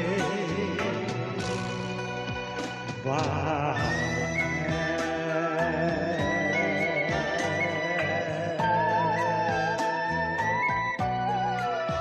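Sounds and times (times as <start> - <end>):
man singing: 0.0 - 1.8, 3.0 - 9.8
karaoke backing music: 0.0 - 12.0.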